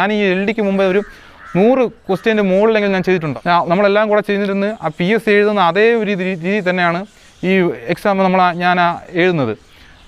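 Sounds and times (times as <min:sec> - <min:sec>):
man speaking: 0:00.0 - 0:09.7
crow cawing: 0:00.8 - 0:02.7.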